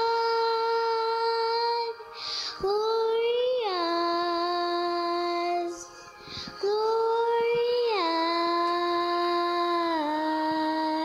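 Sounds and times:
girl singing into a microphone: 0:00.0 - 0:11.0.

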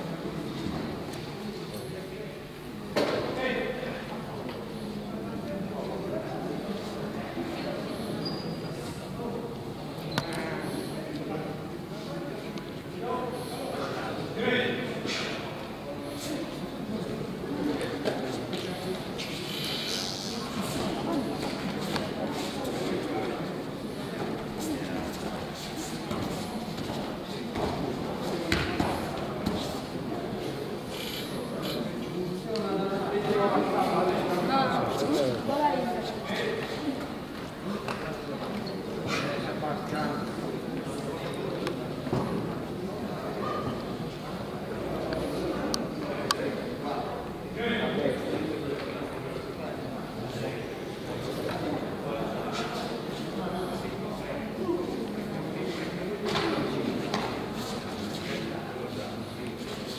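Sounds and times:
murmur of voices in hall: 0:00.0 - 0:59.9.

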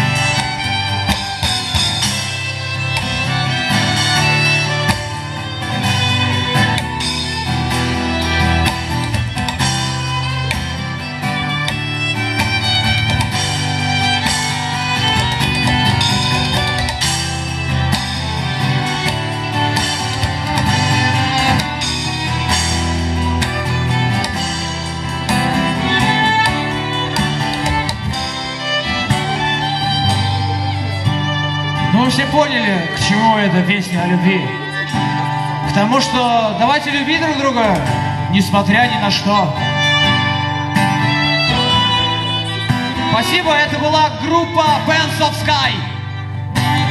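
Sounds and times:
acoustic guitar strumming: 0:00.0 - 0:46.9
bowed violin melody: 0:00.0 - 0:46.9.

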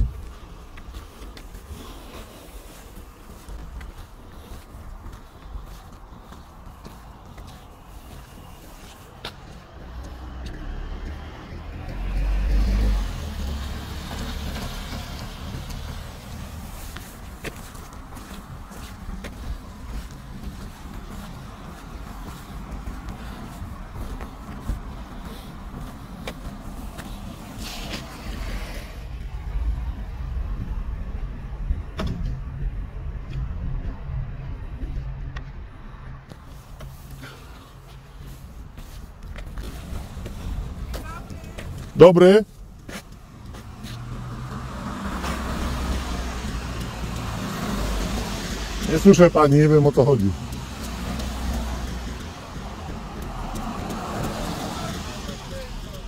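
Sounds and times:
car passing on wet road: 0:00.0 - 0:31.5, 0:33.9 - 0:56.0.

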